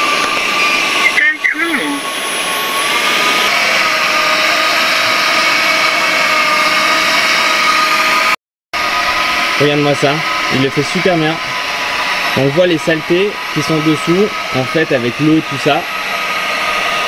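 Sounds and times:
suction fan whine: 0:00.0 - 0:17.0.

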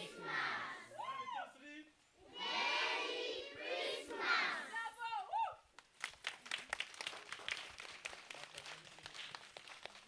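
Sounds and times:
people clapping hands: 0:05.8 - 0:10.0.

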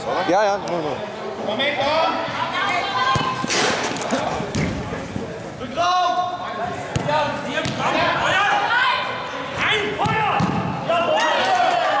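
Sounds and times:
players shouting: 0:01.7 - 0:04.8, 0:05.6 - 0:12.0.

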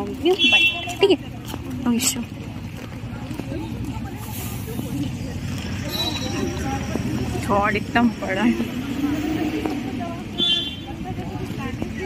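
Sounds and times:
bus engine rumbling: 0:00.0 - 0:12.0
people talking: 0:00.0 - 0:12.0.

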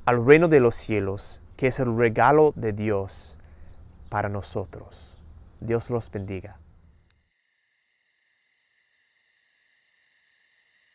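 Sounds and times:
crickets chirping: 0:00.0 - 0:10.9.

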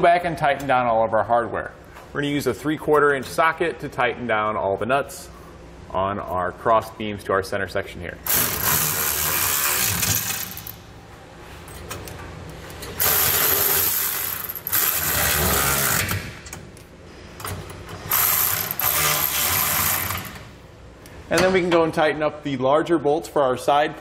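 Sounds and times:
cordless ratchet running nuts: 0:08.3 - 0:10.8, 0:13.0 - 0:16.2, 0:18.0 - 0:20.4.

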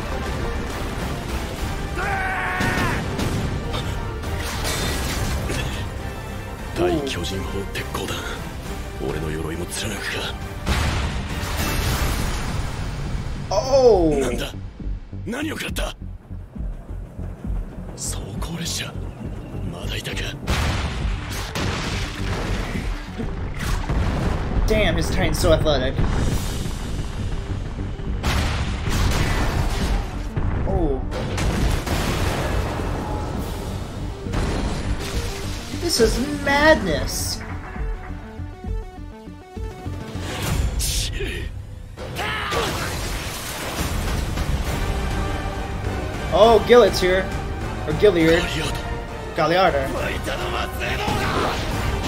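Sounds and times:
battle soundtrack music: 0:00.0 - 0:52.0
man shouting: 0:50.6 - 0:51.6.

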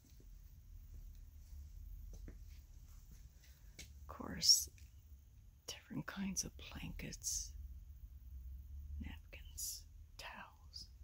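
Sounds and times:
faint low hum: 0:00.0 - 0:11.0
person whispering with hiss: 0:09.0 - 0:11.0.

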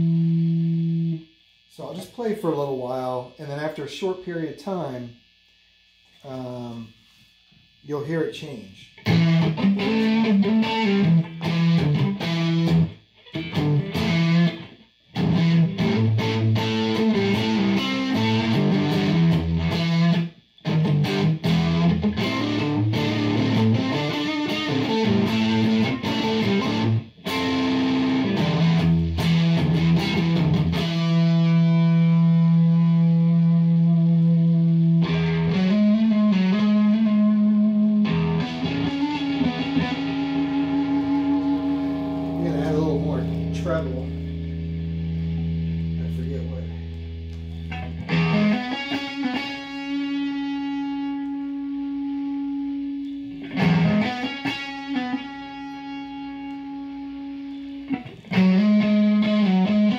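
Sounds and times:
distorted electric guitar riffs: 0:00.0 - 0:59.9.

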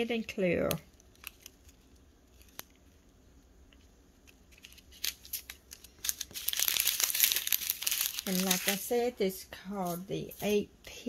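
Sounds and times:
plastic packaging crinkling: 0:00.7 - 0:03.0, 0:04.2 - 0:09.0.

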